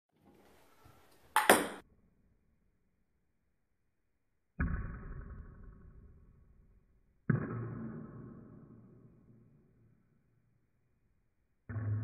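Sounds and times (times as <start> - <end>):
table tennis ball clicks: 1.4 - 1.8.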